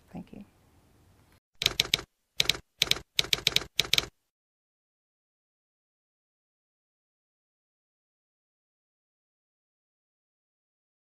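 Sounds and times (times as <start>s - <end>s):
typewriter keystroke clacks: 1.6s - 4.1s.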